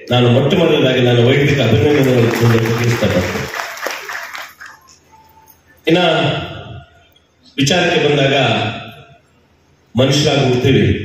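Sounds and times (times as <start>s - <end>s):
man's amplified speech: 0.0s - 3.6s, 5.8s - 6.9s, 7.5s - 9.2s, 9.9s - 11.0s
audience applause: 1.6s - 5.0s.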